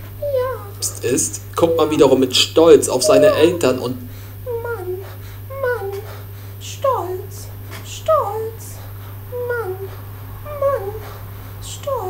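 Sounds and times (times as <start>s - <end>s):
steady low hum: 0.0s - 12.0s
high falling call: 1.6s - 4.0s.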